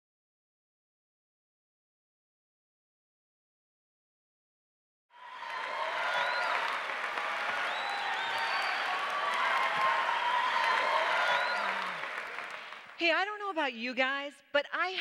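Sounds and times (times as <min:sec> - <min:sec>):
audience applauding: 0:05.2 - 0:13.0.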